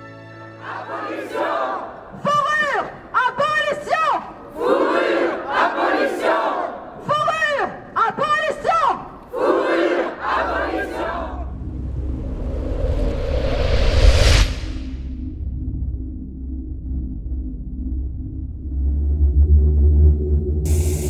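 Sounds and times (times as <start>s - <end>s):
crowd chanting in unison: 0.5s - 3.0s, 3.7s - 7.1s, 9.2s - 11.6s
lead voice shouting: 2.1s - 4.4s, 7.0s - 9.2s
low rumble and rising whoosh: 11.2s - 21.0s.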